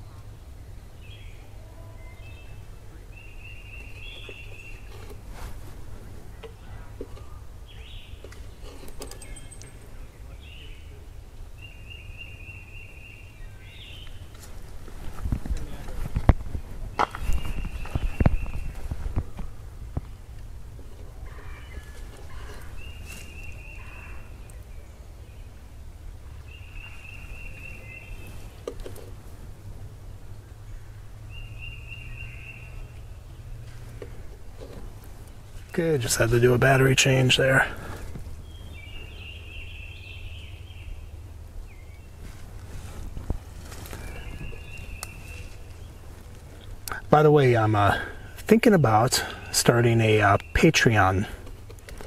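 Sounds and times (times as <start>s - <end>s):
low outdoor rumble: 0.0s - 52.0s.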